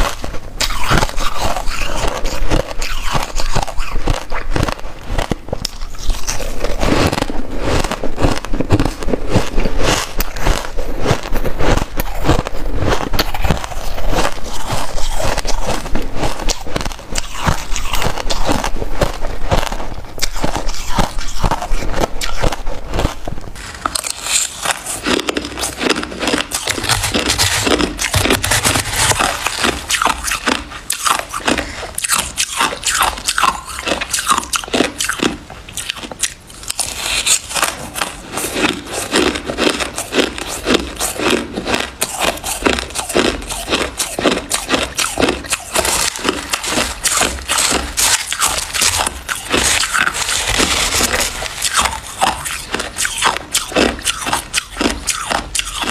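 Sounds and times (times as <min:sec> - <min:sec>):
chewing crunchy ice: 0:00.0 - 0:55.9.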